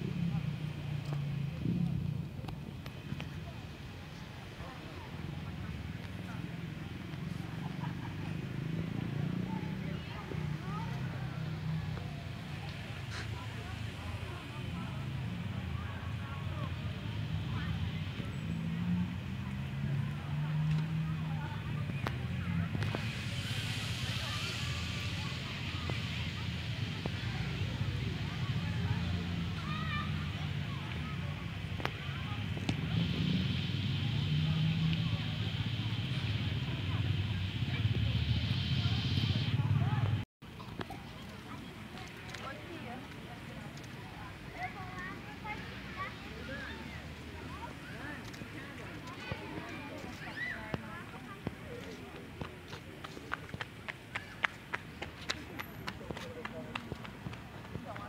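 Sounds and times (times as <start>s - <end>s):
distant voices: 0.0s - 58.0s
footsteps on pavement: 47.6s - 58.0s.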